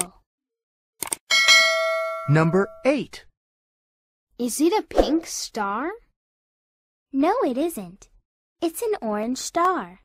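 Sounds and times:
bell-like chime ringing: 1.3 - 3.0.

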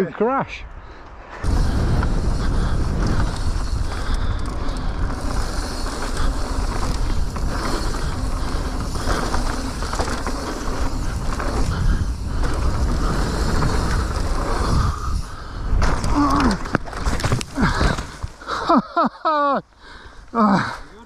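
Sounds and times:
wind buffeting microphone: 0.7 - 18.5
tyre roar on dirt: 1.3 - 18.7
bike chain and frame rattle: 1.4 - 19.0.

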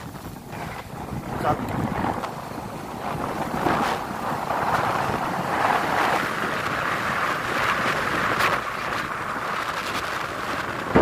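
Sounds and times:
motorcycle engine running: 0.0 - 11.0
wind rush over microphone: 0.0 - 11.0.

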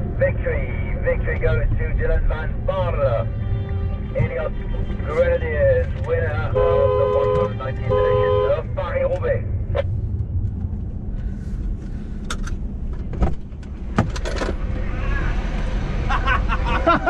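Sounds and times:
low rumble inside moving car: 0.0 - 17.0
car horn: 3.0 - 9.0.

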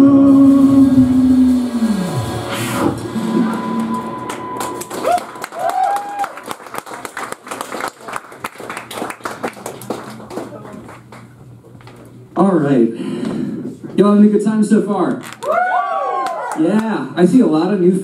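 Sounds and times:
audience applause and cheering: 1.0 - 11.2, 15.3 - 16.8.

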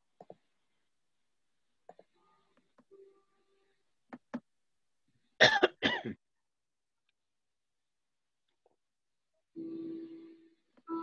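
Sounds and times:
person clearing throat: 5.4 - 6.2.

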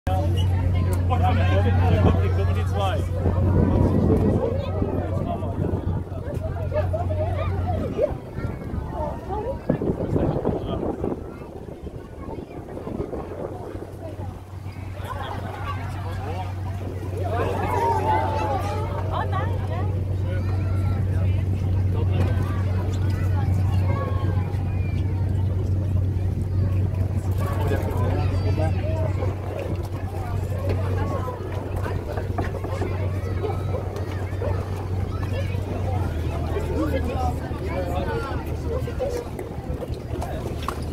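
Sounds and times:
boat engine running: 0.1 - 40.9
people talking: 0.1 - 40.9
voices: 0.1 - 40.9
wind buffeting microphone: 0.1 - 40.9.

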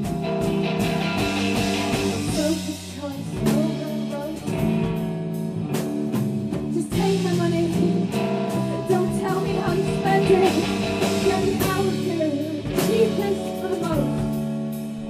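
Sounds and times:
drum kit: 0.0 - 15.0
electric guitar: 0.0 - 15.0
rock band playing: 0.0 - 15.0.

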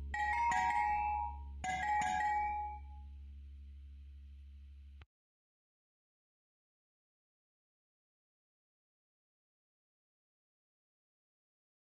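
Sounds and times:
chime-like mallet chords: 0.0 - 3.0.

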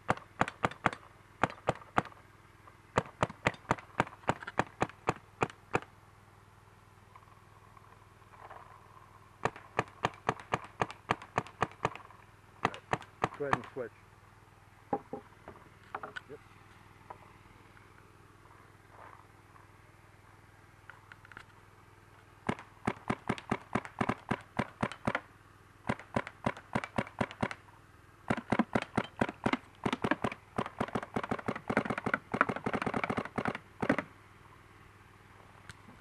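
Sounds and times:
paintball marker firing rapid shots: 0.0 - 2.2, 3.0 - 5.9, 9.4 - 12.0, 12.6 - 13.8, 22.4 - 25.2, 25.8 - 27.6, 28.3 - 34.1.

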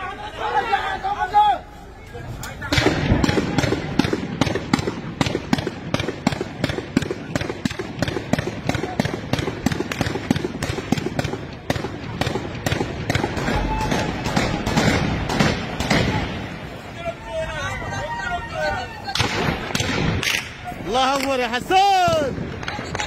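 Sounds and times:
heavy machine gun firing: 2.7 - 16.5.

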